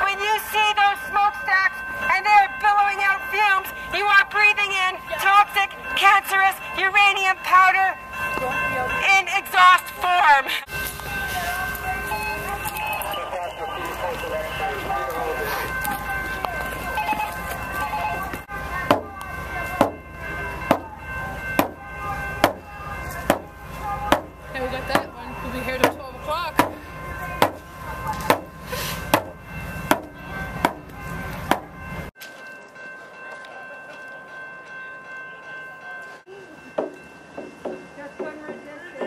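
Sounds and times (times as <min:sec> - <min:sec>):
steady high tones: 0:00.0 - 0:39.0.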